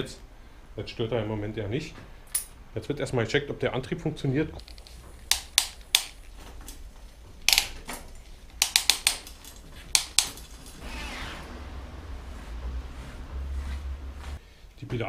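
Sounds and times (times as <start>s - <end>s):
bike handling clicks and knocks: 4.6s - 10.8s
bicycle chain and gears whirring: 8.0s - 14.4s.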